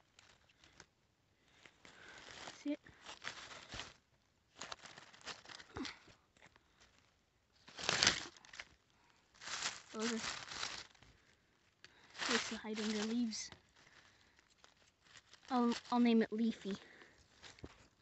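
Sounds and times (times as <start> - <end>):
dry leaves rustling and crackling: 0.0 - 0.9, 1.5 - 17.8.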